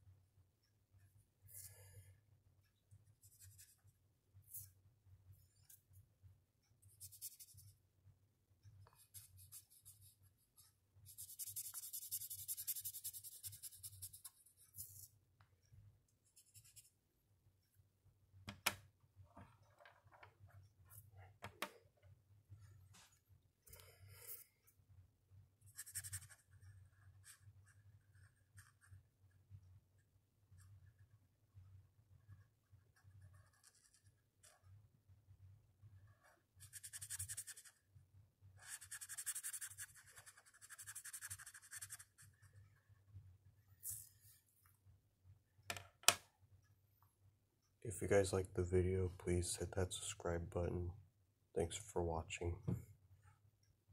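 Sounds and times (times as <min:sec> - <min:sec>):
marker scratching on paper: 0:06.9 - 0:07.7, 0:08.9 - 0:15.1, 0:25.7 - 0:29.0, 0:32.2 - 0:34.7, 0:36.0 - 0:37.8, 0:38.6 - 0:42.6.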